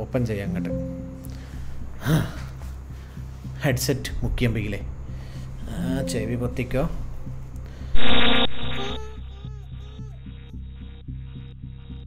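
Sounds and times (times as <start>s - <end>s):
steady low hum: 0.0s - 12.0s
loud electronic blast: 8.0s - 9.0s
short gliding electronic chirps: 8.0s - 9.2s.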